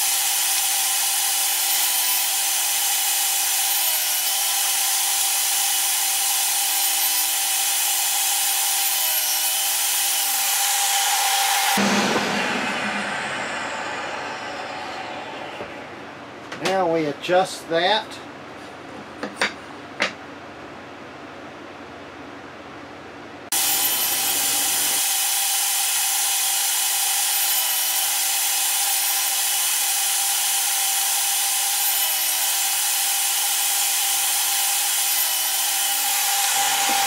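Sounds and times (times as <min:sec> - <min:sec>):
table saw running: 0:00.0 - 0:16.4, 0:23.5 - 0:37.0.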